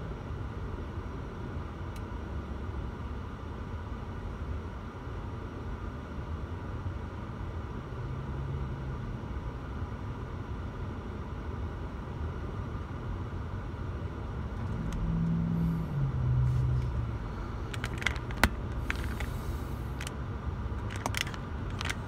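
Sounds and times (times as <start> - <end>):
engine hum: 0.0 - 22.0
traffic rumble inside car: 0.0 - 22.0.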